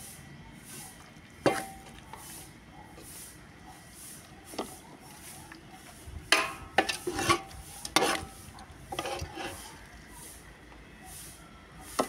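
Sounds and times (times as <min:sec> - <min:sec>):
metal spoon scraping a dish: 0:06.0 - 0:09.9.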